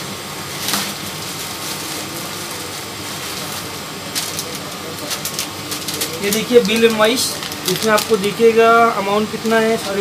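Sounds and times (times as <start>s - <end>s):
plastic bag rustling and tearing: 0.5s - 8.4s.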